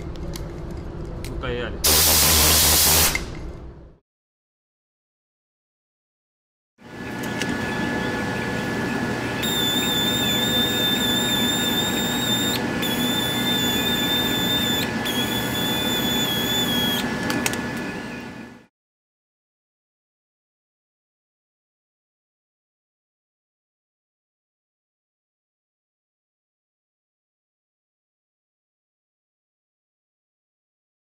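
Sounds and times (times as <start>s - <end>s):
air hiss: 1.8s - 3.2s
pneumatic polisher whine: 7.0s - 18.4s.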